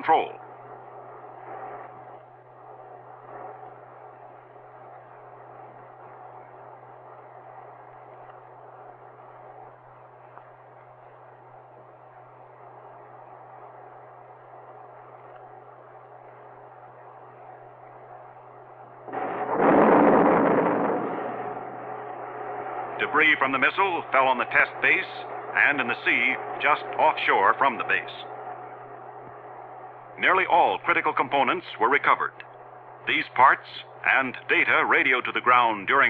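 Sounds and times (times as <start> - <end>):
faint steady noise: 0.0 - 36.0
low hum: 0.0 - 36.0
loud explosion: 19.1 - 23.0.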